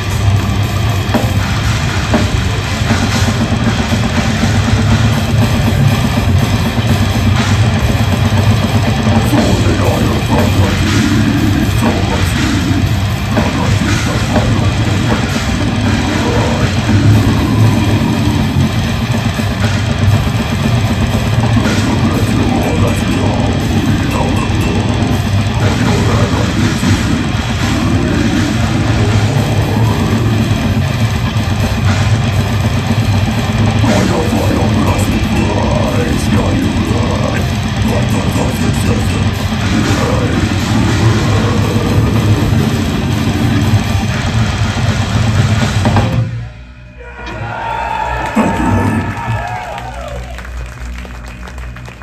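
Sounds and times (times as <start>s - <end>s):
fast dense drumming: 0.0s - 46.4s, 47.5s - 52.0s
bass guitar: 0.0s - 52.0s
distorted electric guitars: 0.0s - 52.0s.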